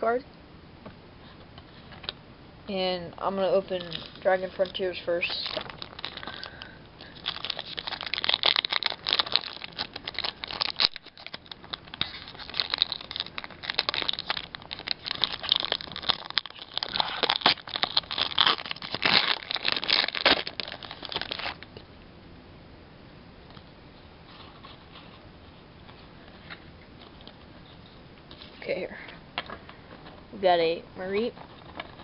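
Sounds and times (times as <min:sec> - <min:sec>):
foil wrapper crinkling and tearing: 0:03.5 - 0:21.7, 0:31.2 - 0:32.0.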